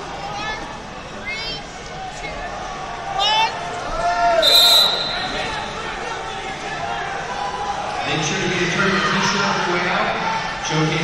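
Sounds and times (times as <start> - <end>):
referee's whistle: 4.4 - 5.5.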